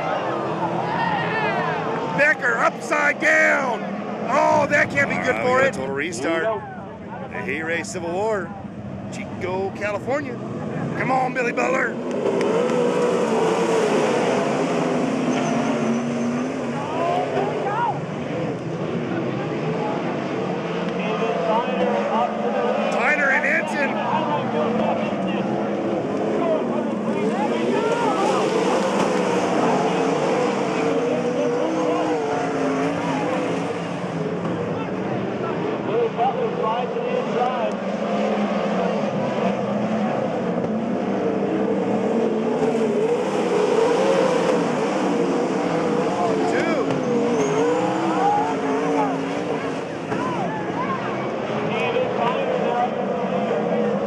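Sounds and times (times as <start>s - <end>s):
race car engines passing: 0.0s - 54.0s.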